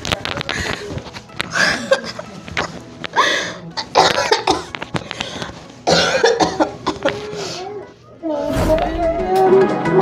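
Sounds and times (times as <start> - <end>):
man coughing: 5.9 - 7.0.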